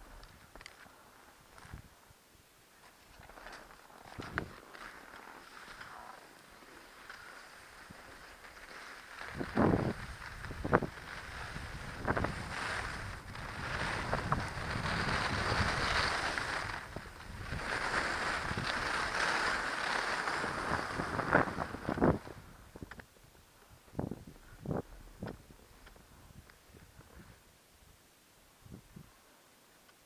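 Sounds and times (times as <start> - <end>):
skis scraping over snow: 2.8 - 23.0
wind buffeting microphone: 9.3 - 23.0, 23.7 - 27.4.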